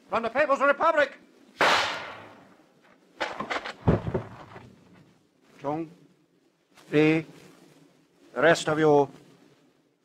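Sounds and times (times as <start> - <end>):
gunshot: 1.6 - 2.5
heavy thud: 3.2 - 4.7
knocks: 3.2 - 4.7.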